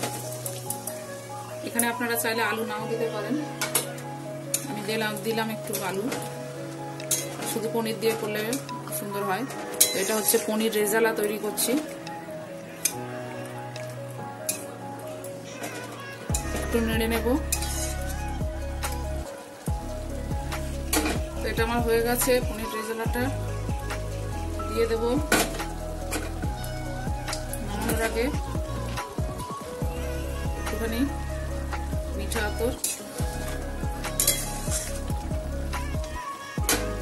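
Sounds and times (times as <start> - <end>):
background music: 0.0 - 37.0
gravy sizzling and bubbling: 0.0 - 37.0
spatula scraping metal pan: 9.4 - 10.7, 15.5 - 18.3, 34.2 - 35.0.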